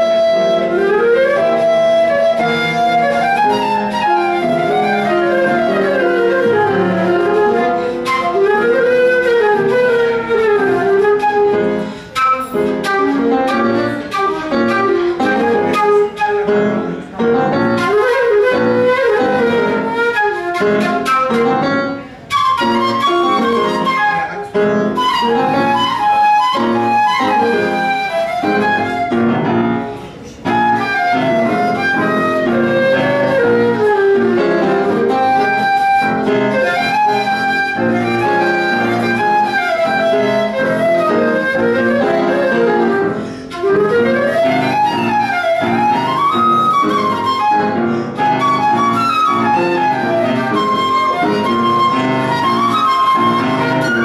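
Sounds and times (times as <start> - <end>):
flute melody: 0.0 - 54.0
piano accompaniment: 0.0 - 54.0.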